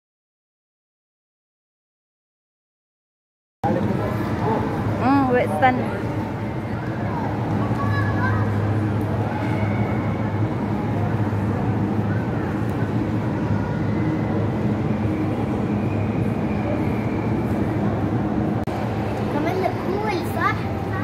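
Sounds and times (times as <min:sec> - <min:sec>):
murmur of distant voices: 0:03.6 - 0:21.0.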